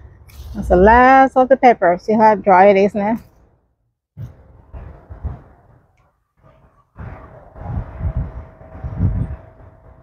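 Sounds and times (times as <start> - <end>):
wind buffeting microphone: 4.2 - 10.0.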